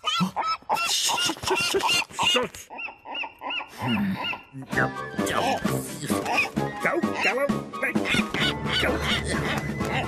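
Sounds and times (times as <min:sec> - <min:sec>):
background music: 0:03.8 - 0:10.0
cartoon seagull squawking: 0:06.2 - 0:10.0.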